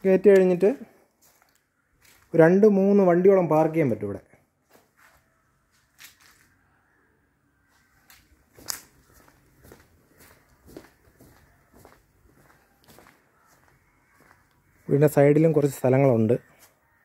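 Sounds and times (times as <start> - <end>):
faint footsteps walking: 0.0 - 2.6, 4.6 - 6.6, 7.7 - 16.8.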